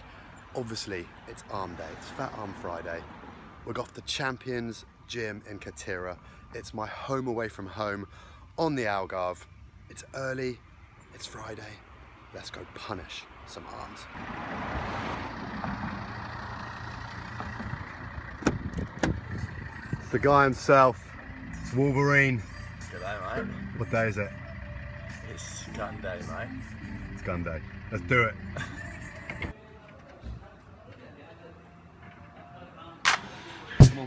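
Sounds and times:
car engine idling: 0:14.2 - 0:29.5
car door latch click: 0:18.4 - 0:19.2
person laughing: 0:28.5 - 0:29.3.

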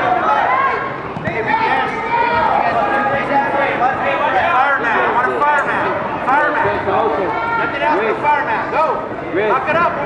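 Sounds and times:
people shouting and talking: 0:00.0 - 0:10.0.

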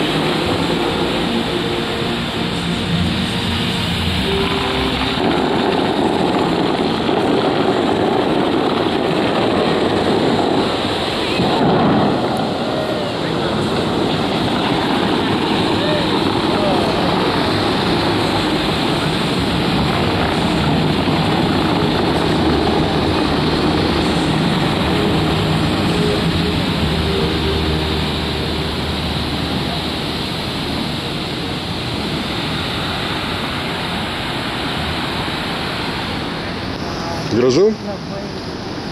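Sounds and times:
water jets spraying and falling: 0:00.0 - 0:38.9.

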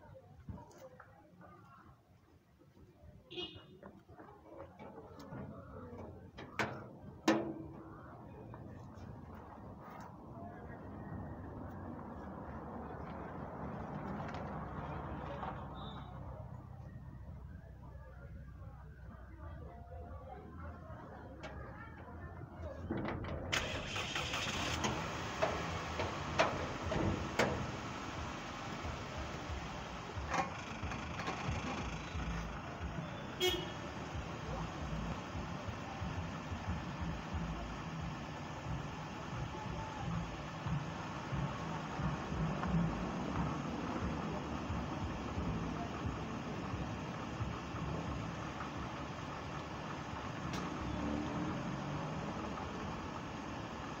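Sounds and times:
car engine running: 0:23.5 - 0:54.0.

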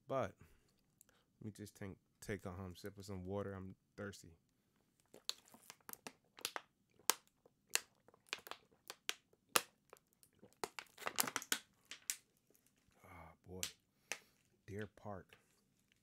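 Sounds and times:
plastic water bottle crinkling: 0:05.0 - 0:13.0.

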